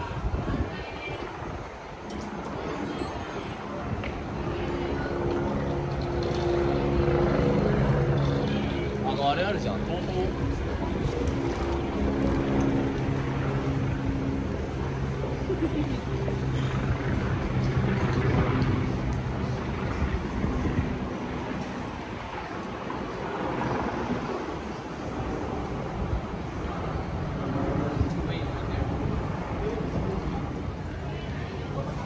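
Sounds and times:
distant voices: 0.0s - 32.0s
traffic noise: 0.0s - 32.0s.

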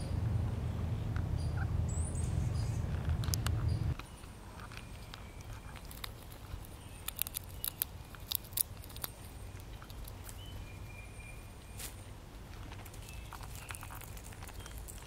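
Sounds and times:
low rumble: 0.0s - 4.0s
clicks and crackles in dry leaves: 2.8s - 10.9s, 11.6s - 15.0s.

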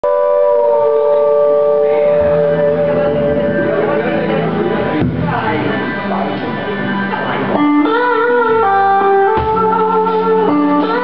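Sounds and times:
saxophone holding long note: 0.0s - 5.0s
band holding steady note: 0.0s - 11.0s.

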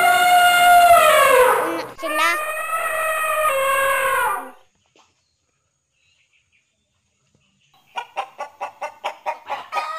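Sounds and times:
rooster crowing: 2.4s - 4.6s, 9.4s - 9.9s.

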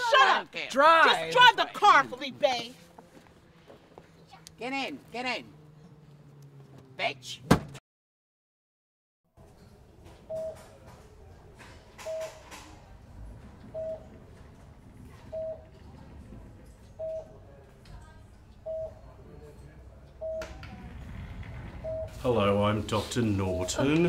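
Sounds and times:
patient monitor beeping: 10.2s - 11.0s, 11.9s - 12.8s, 13.6s - 14.4s, 15.2s - 15.8s, 16.9s - 17.6s, 18.6s - 19.2s, 20.2s - 20.9s, 21.6s - 22.6s, 23.2s - 24.0s.

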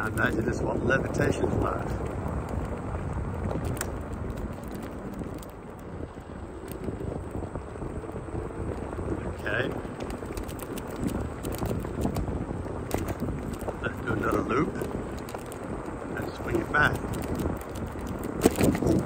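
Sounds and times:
scooter wheels rolling on asphalt: 0.0s - 19.0s
wind on microphone: 0.0s - 19.0s.

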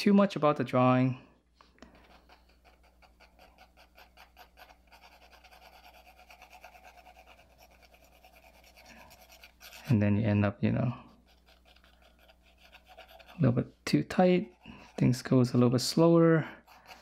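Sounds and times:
pencil strokes on paper: 1.9s - 10.0s, 11.0s - 17.0s.

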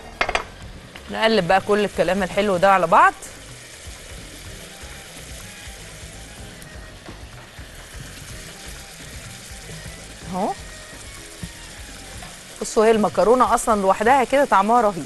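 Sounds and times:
sauce sizzling: 0.0s - 15.0s.

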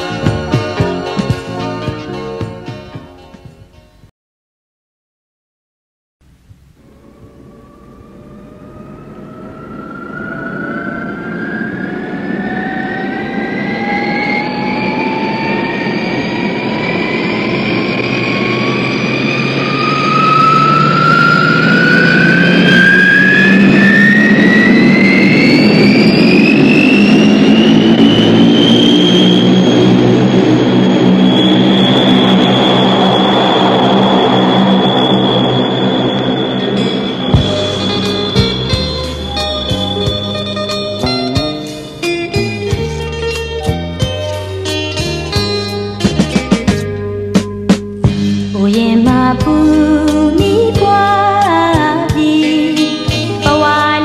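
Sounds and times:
jet engine whine and rush: 0.0s - 2.9s, 6.4s - 54.0s.

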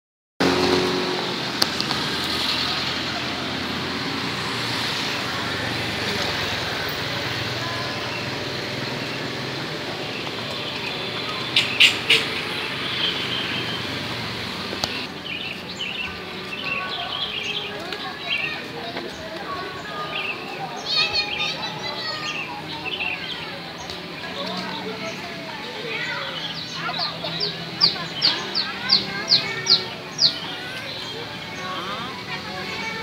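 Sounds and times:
road traffic noise: 0.4s - 33.0s.

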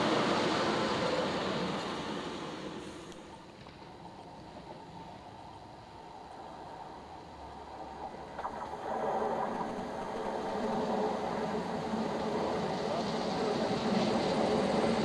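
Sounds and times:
diesel train engines: 0.0s - 3.6s.

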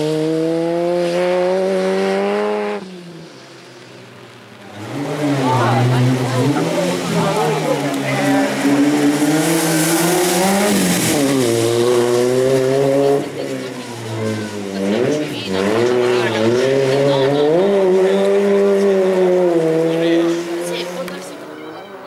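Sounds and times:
race car engine revving: 0.0s - 22.0s.

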